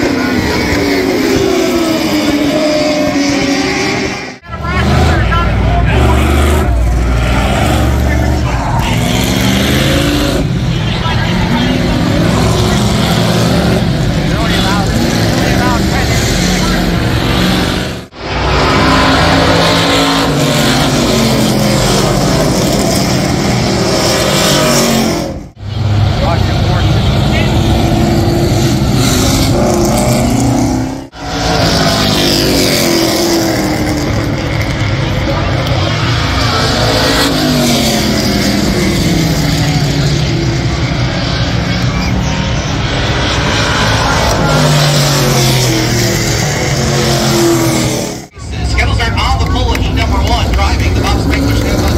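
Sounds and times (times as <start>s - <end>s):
race car engines at speed: 0.0s - 51.9s.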